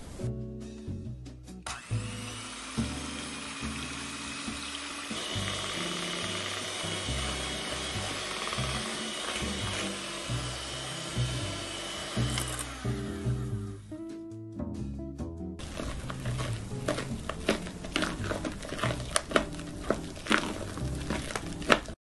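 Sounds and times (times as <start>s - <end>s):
electric hand mixer running: 1.7s - 13.7s.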